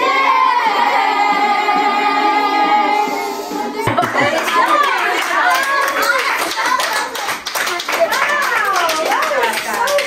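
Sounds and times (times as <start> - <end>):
children singing and talking: 0.0 - 8.4
people clapping hands: 3.9 - 10.0.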